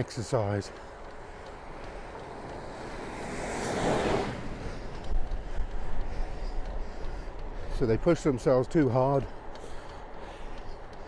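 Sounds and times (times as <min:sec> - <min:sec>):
lorry passing: 0:00.4 - 0:11.0.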